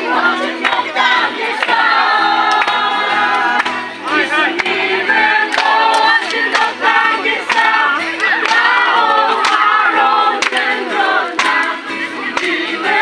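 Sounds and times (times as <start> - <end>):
group of people singing: 0.0 - 13.0.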